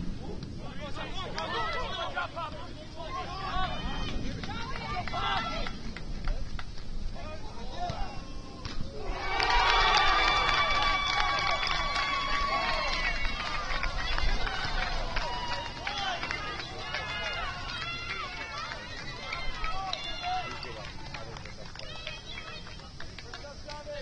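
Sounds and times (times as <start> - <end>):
players shouting and calling: 0.2 - 24.0.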